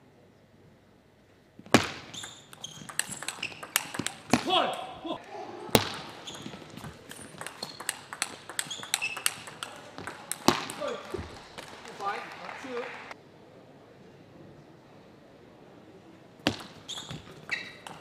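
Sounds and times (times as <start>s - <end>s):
table tennis ball clicking: 1.8s - 4.9s, 5.8s - 12.2s, 16.5s - 18.0s.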